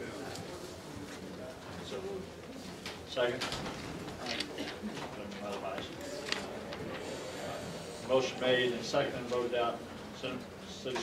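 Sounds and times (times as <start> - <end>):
faint murmured voices: 0.0 - 11.0
room noise: 0.0 - 11.0.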